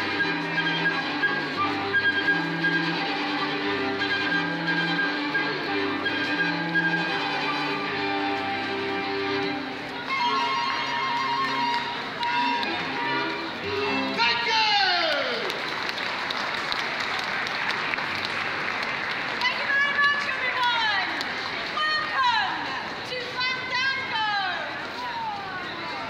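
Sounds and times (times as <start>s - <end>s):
cello notes: 0.0s - 14.2s
bowed violins: 0.0s - 15.0s
flute: 0.0s - 15.1s.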